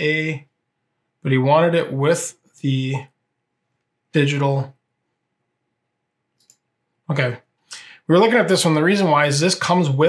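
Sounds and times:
computer mouse click: 0:06.4 - 0:06.7.

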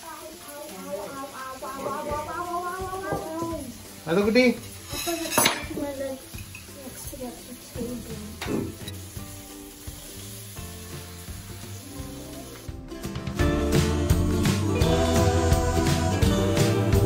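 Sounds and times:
vegetables sizzling in a pan: 0:00.0 - 0:17.0
metal utensils clinking on pan: 0:04.5 - 0:07.2.

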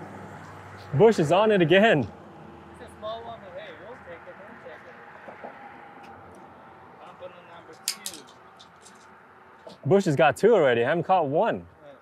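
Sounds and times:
passing traffic: 0:00.0 - 0:12.0
man talking: 0:00.9 - 0:02.1, 0:02.8 - 0:05.2, 0:07.0 - 0:08.3, 0:09.8 - 0:12.0
sharp metallic clicks: 0:07.7 - 0:09.1.

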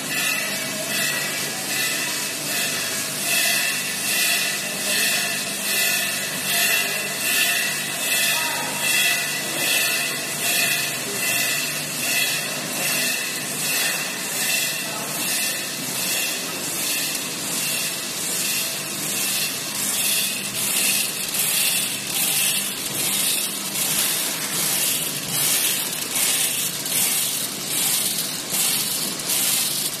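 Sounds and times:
packing machine running: 0:12.6 - 0:30.0.

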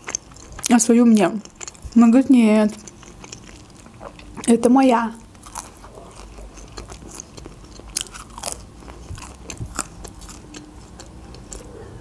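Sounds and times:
chewing pizza: 0:00.0 - 0:12.0
crust crunching: 0:05.4 - 0:11.7.

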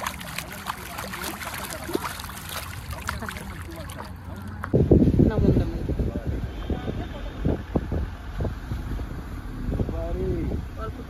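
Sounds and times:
wind buffeting microphone: 0:00.0 - 0:10.9.

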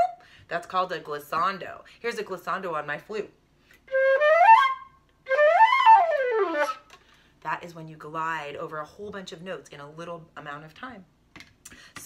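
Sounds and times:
flute glissando: 0:03.9 - 0:06.9.

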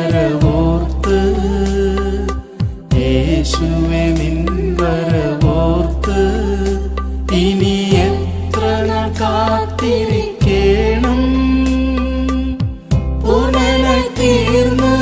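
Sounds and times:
chant-like worship song: 0:00.0 - 0:15.0.

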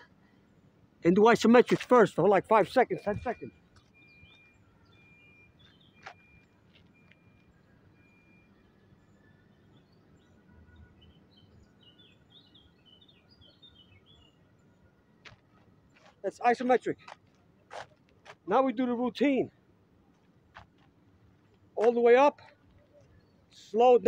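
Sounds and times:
small birds chirping: 0:02.7 - 0:17.7, 0:20.9 - 0:24.0.

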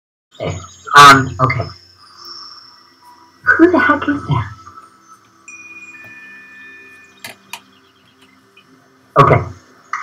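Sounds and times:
faint high steady tones: 0:00.4 - 0:10.0.

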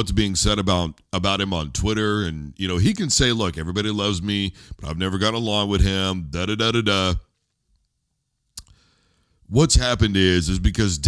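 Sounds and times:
man speaking: 0:00.0 - 0:07.4, 0:09.5 - 0:11.0.

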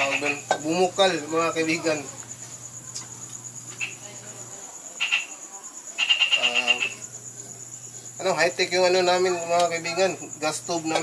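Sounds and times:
rapid chirping trill: 0:00.0 - 0:01.0, 0:05.0 - 0:07.1
crickets chirping: 0:00.0 - 0:11.0.

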